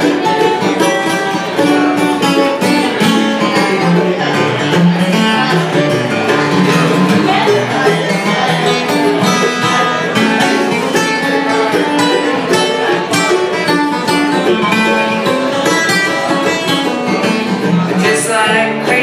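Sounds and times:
acoustic guitar: 0.0s - 19.0s
mandolin picking: 0.0s - 19.0s.

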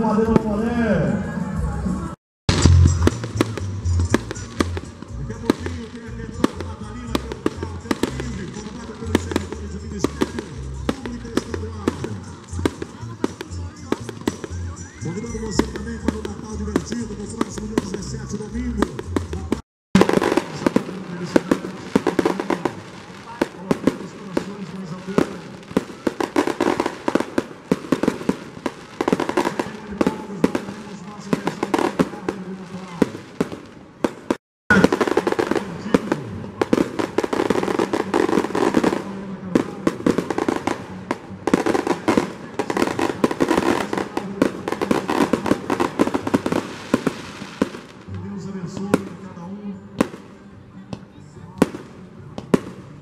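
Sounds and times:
fireworks pops bangs and crackles: 2.5s - 48.1s, 48.7s - 49.3s, 50.0s - 53.0s.

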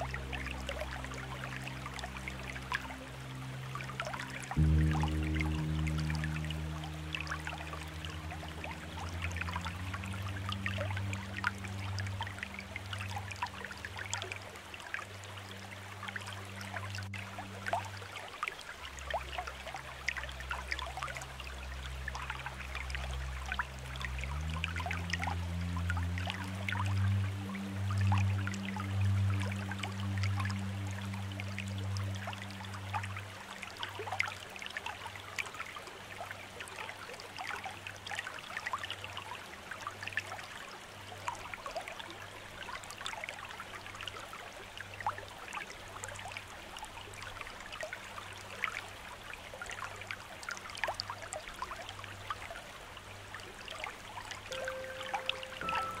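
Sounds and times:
soft low music tones: 0.0s - 56.0s
water trickling down rocks: 0.0s - 56.0s.

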